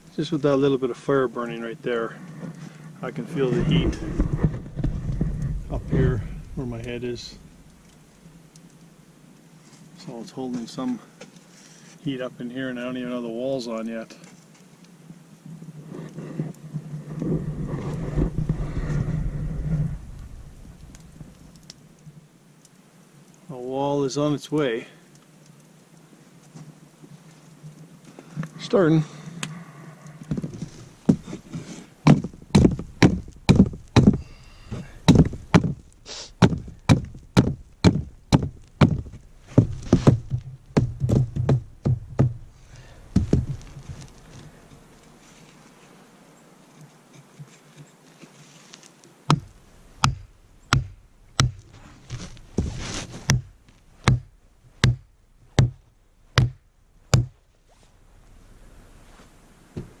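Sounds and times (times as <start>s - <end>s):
hard wooden knocks: 32.0s - 35.8s, 36.4s - 42.5s, 43.1s - 43.8s, 53.3s - 55.8s, 56.4s - 57.4s.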